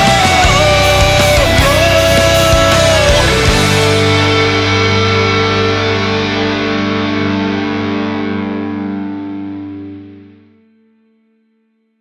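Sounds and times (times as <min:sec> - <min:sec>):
distorted electric guitar chord: 0:00.0 - 0:11.6.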